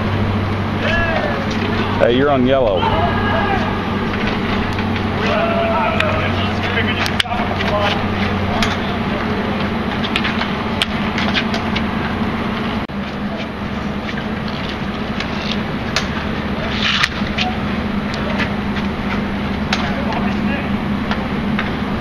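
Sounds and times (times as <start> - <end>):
steady low hum: 0.0 - 22.0
faint shouting voices: 0.3 - 11.2.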